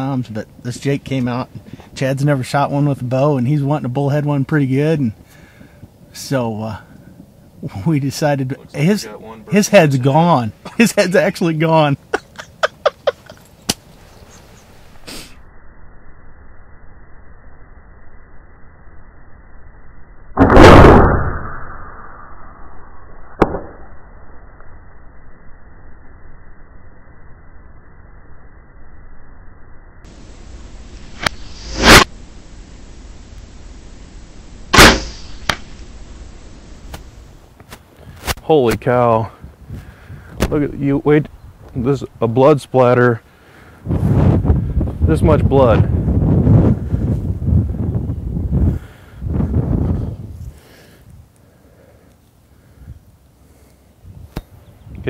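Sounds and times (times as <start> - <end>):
faint steady hiss: 0.0 - 15.5, 30.1 - 46.2, 46.8 - 55.0
arrow whooshing from bow: 20.3 - 24.0, 31.1 - 32.2, 34.7 - 35.9
sharp click: 34.8 - 35.7
wind rumble on microphone: 38.0 - 41.8, 43.8 - 51.3, 54.0 - 55.0.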